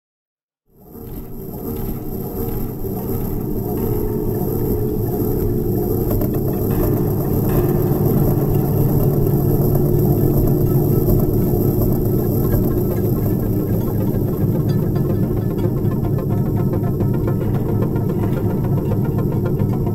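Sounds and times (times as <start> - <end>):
low rumbling drone: 1.1 - 19.9.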